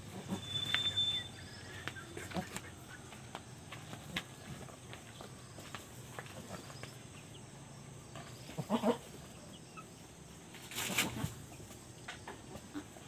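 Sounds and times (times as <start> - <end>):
flip-flop footsteps on dirt: 1.8 - 7.3
goat bleating: 8.6 - 9.1.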